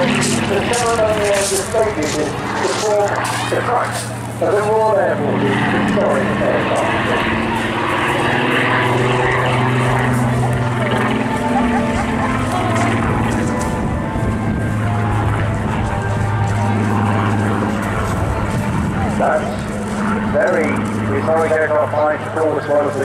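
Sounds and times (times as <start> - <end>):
aircraft engine drone: 0.0 - 23.0
loudspeaker commentary: 0.0 - 23.0.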